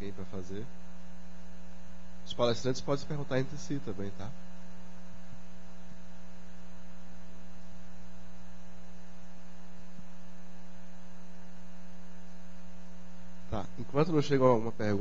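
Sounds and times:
electrical mains hum: 0:00.0 - 0:15.0.

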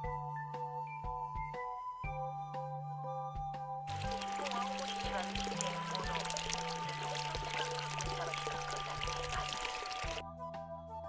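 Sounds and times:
background music: 0:00.0 - 0:11.0
water splashing into basin: 0:03.9 - 0:10.2.

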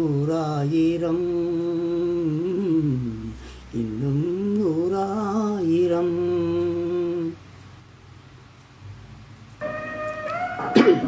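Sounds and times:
man singing: 0:00.0 - 0:07.4
instrumental backing music: 0:09.5 - 0:11.0.

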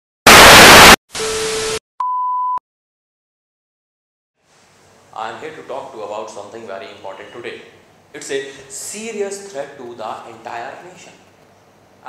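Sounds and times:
television static hiss: 0:00.3 - 0:01.0.

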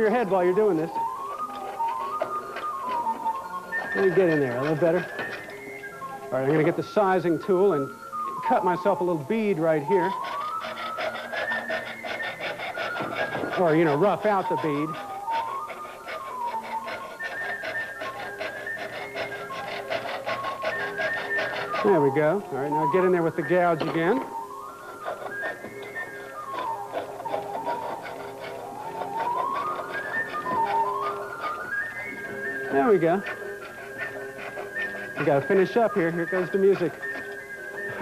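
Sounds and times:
recorder music: 0:00.0 - 0:38.0
tool scraping spinning wood: 0:00.0 - 0:38.0.

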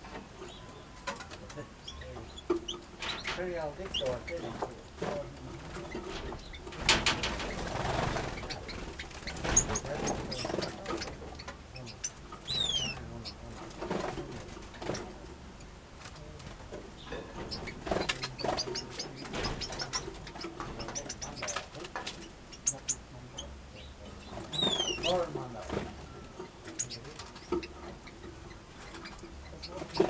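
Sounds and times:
finch chirps and tweets: 0:00.4 - 0:13.8, 0:17.0 - 0:30.0.

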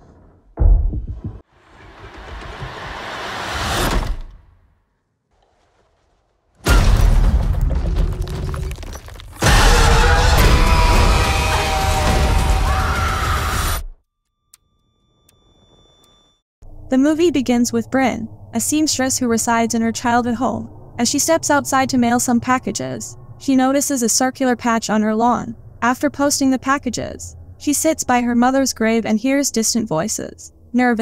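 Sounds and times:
deep boom: 0:00.5 - 0:01.4
rising whoosh: 0:00.7 - 0:04.6
low hum: 0:14.6 - 0:30.8
dark soundtrack with deep rumble: 0:16.6 - 0:30.8.

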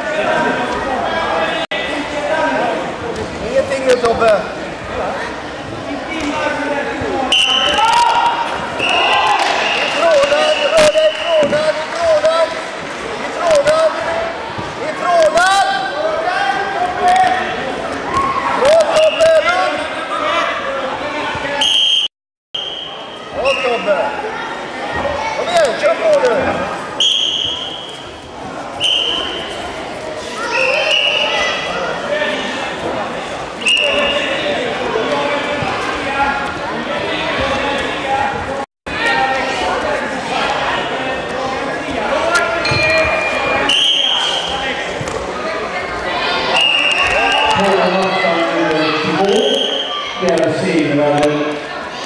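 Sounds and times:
shrill shouting in echoing hall: 0:30.3 - 0:32.6, 0:45.5 - 0:50.3.

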